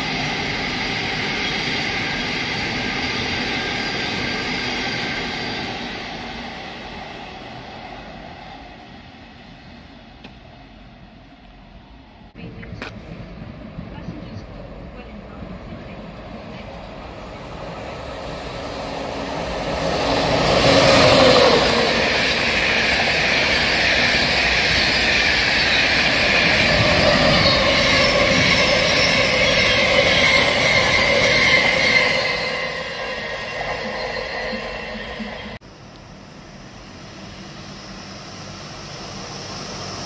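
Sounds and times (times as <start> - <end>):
passenger train passing at speed: 0.0 - 40.0.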